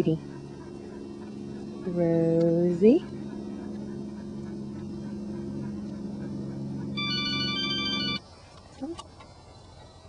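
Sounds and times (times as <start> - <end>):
steady low hum: 0.0 - 10.0
short rising whine: 0.4 - 8.2
high electronic tones chord: 5.3 - 8.2.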